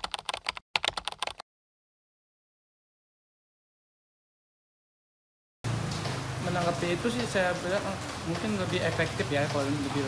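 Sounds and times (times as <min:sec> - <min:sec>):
keyboard typing: 0:00.0 - 0:01.4.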